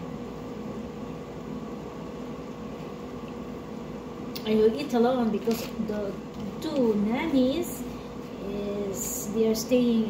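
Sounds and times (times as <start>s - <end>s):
range hood fan humming: 0.0s - 10.0s.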